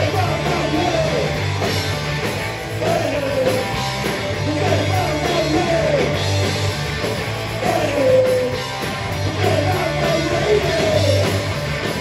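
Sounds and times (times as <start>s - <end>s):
distorted electric guitars: 0.0s - 12.0s
electric bass: 0.0s - 12.0s.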